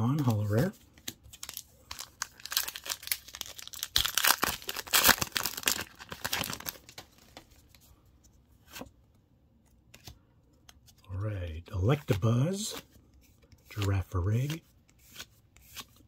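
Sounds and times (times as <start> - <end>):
foil pack tearing and crinkling: 1.4 - 6.9.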